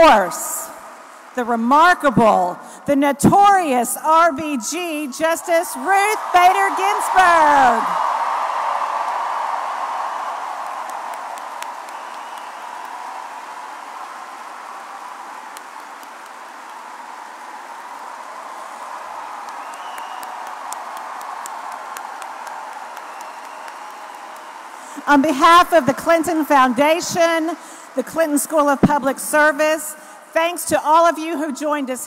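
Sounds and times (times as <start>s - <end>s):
crowd applauding and cheering: 5.2s - 28.0s.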